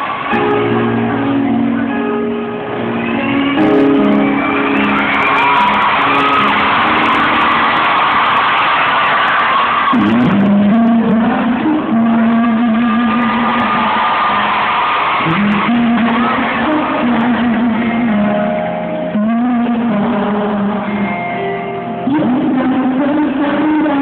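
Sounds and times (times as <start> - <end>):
rock band playing live: 0.0 - 24.0
man singing with vibrato: 9.9 - 14.4, 15.2 - 24.0.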